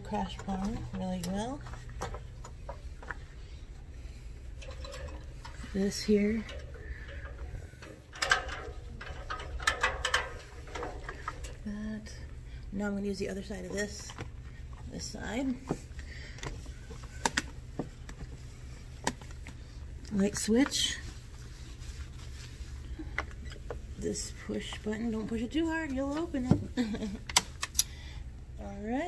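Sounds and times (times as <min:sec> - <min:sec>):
low hum: 0:00.0 - 0:28.8
steady low rumble: 0:00.0 - 0:29.0
cloth wiping a scale: 0:20.6 - 0:23.2
cloth wiping a light switch: 0:20.6 - 0:26.4.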